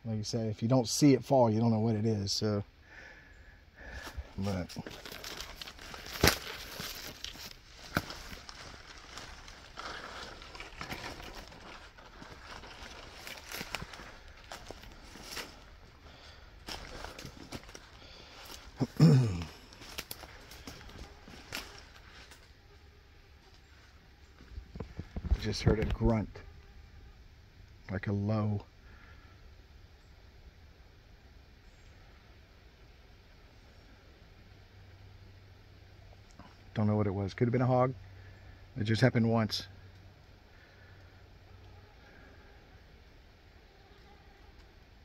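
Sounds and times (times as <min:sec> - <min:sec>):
dry leaves crackling underfoot: 0:03.8 - 0:22.6
low grunt: 0:18.8 - 0:19.7.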